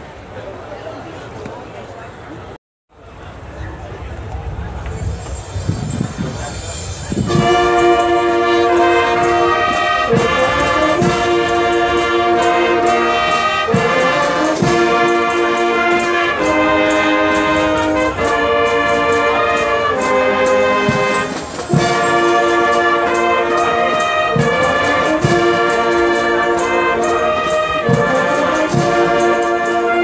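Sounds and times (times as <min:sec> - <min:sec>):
brass band playing chords: 0:06.2 - 0:30.0.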